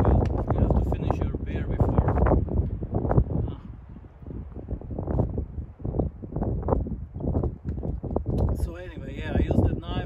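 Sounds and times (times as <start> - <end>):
deep rumble: 0.0 - 10.0
wind buffeting microphone: 0.0 - 10.0.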